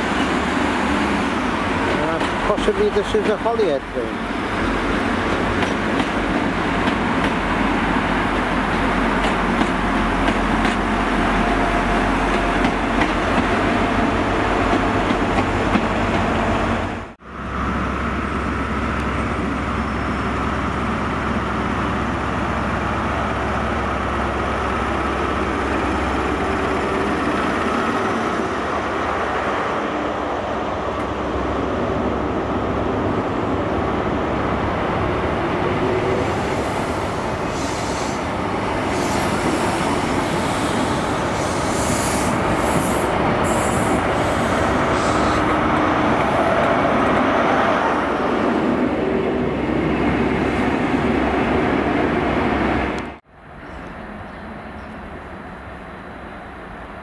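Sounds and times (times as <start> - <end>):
diesel train rumbling past: 0.0 - 57.0.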